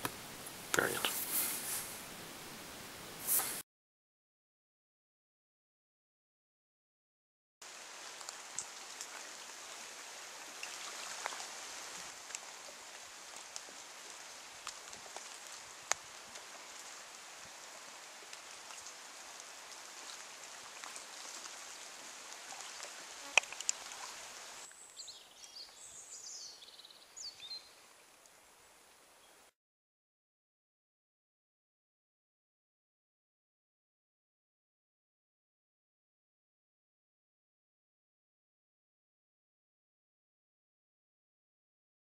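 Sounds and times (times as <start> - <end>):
rain hissing on foliage: 0.0 - 3.6, 7.6 - 29.5
bird chirping: 24.8 - 27.8.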